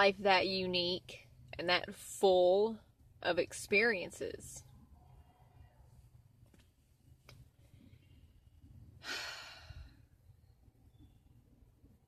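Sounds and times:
woman sighing: 9.0s - 10.0s.

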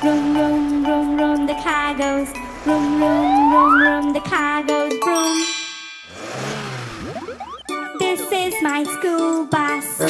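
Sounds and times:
jingly children's music: 0.0s - 10.0s
whoosh with swooping pitch: 2.6s - 4.2s
bright chime: 5.0s - 6.6s.

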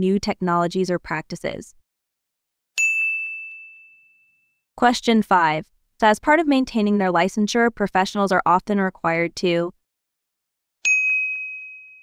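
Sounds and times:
bell-like chime ding: 2.8s - 4.6s, 10.9s - 12.0s.

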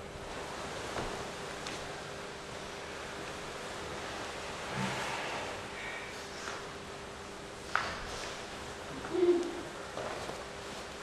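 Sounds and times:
faint hall room noise: 0.0s - 11.0s
person making low hoo sound: 9.0s - 9.8s.

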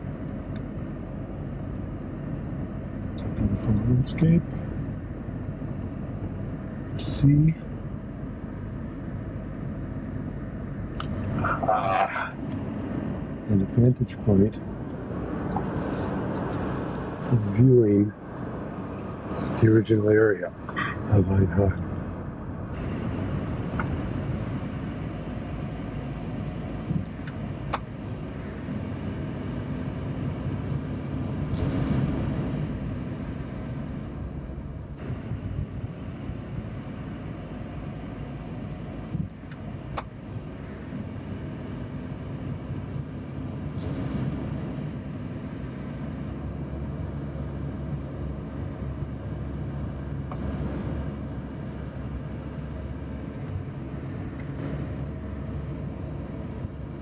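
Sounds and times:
car engine and tyre hum: 0.0s - 57.0s
brief hissing rushes: 31.5s - 32.2s, 43.8s - 44.4s.

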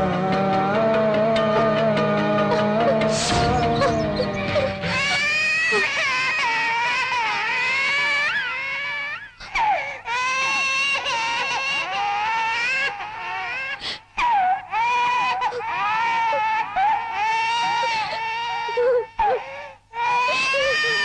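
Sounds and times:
woman crying loudly: 0.2s - 8.6s, 14.3s - 21.0s.

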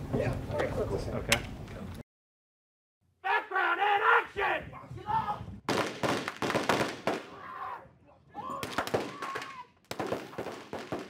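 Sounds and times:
person shouting: 3.2s - 5.5s, 7.3s - 9.7s
gunfire cracks and pops: 5.7s - 7.3s, 8.6s - 11.0s.

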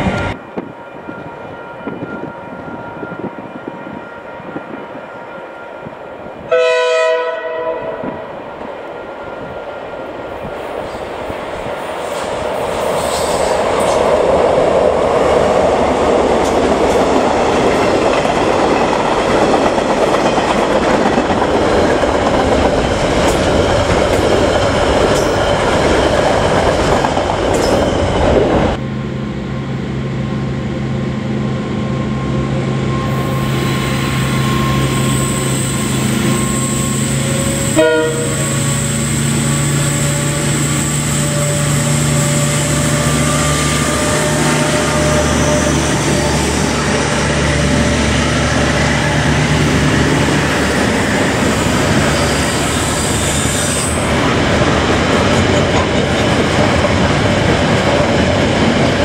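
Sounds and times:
train rushing rumble: 0.0s - 5.2s, 5.8s - 59.0s
diesel locomotive engines droning: 0.0s - 59.0s.

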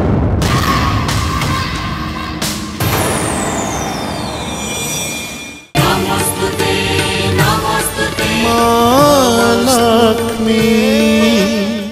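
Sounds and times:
low rumbling music: 0.0s - 11.9s
sharp hit: 2.4s - 6.3s
high ringing tone sliding down: 2.9s - 5.8s.

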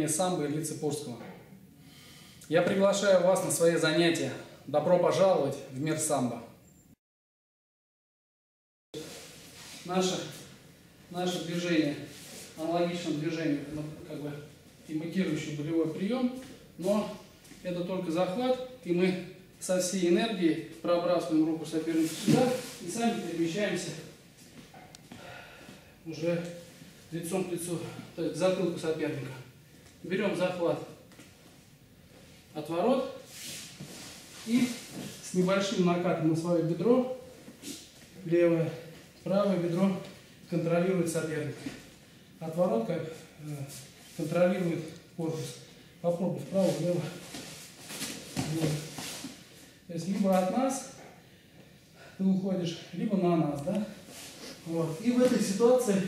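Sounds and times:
wrestlers scuffling on a mat: 21.9s - 22.9s, 46.5s - 50.4s.

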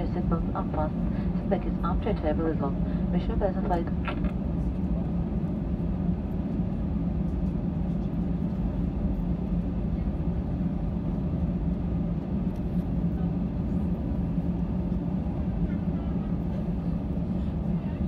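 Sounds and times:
aircraft cabin engine drone: 0.0s - 18.0s.

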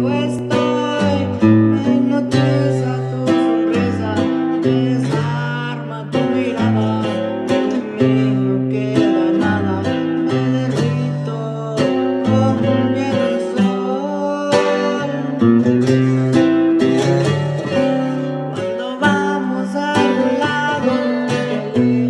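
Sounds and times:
acoustic guitar strummed: 0.0s - 22.0s
man singing: 0.0s - 22.0s.

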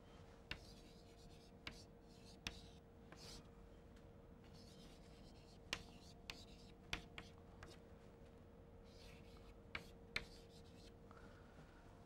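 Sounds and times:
faint steady hum: 0.0s - 12.0s
chalk tapping on board: 0.5s - 0.9s, 1.6s - 1.8s, 2.4s - 3.4s, 5.7s - 7.8s, 9.7s - 10.9s
chalk scratching on chalkboard: 8.9s - 10.9s.

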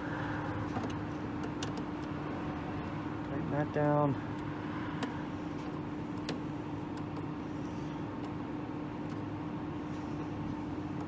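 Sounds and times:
steady tonal hum: 0.0s - 11.0s.

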